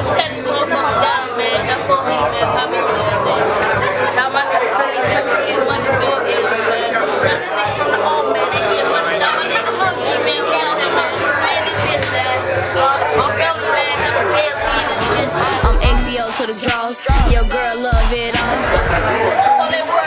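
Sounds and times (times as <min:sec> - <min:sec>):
music playing: 0:00.0 - 0:20.0
people talking over one another: 0:00.0 - 0:20.0.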